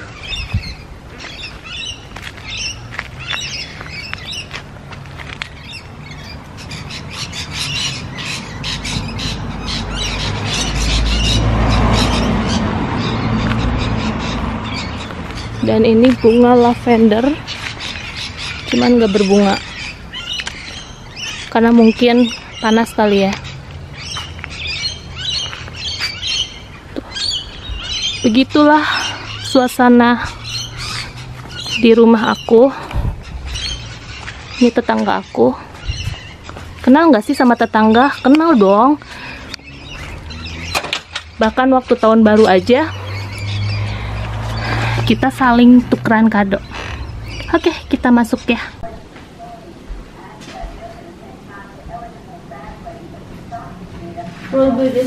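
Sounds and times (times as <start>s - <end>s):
birds calling: 0.0s - 55.0s.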